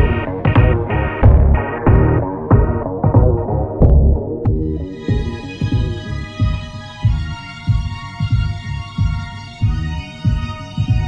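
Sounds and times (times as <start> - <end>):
deep pulsing beat: 0.0 - 11.0
sustained synthesizer notes: 0.0 - 11.0.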